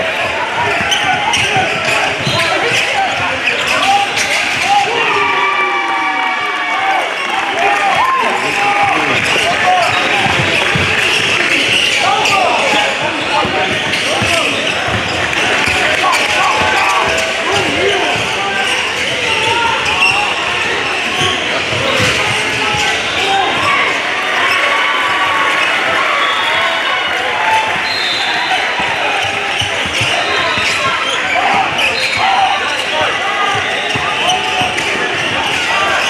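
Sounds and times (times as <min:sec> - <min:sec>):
echoing hubbub of voices: 0:00.0 - 0:36.0
basketball bouncing on wooden floor: 0:10.2 - 0:11.3.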